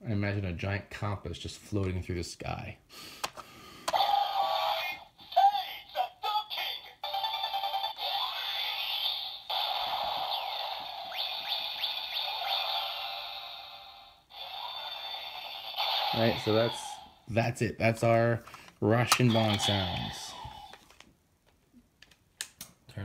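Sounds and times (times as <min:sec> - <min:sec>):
toy electronic jingle and effects: 0:03.9 - 0:17.2.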